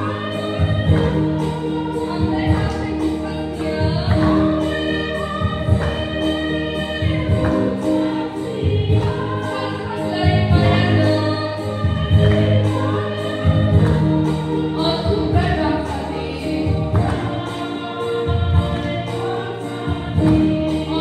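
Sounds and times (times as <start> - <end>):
women's choir singing a hymn: 0.0 - 21.0.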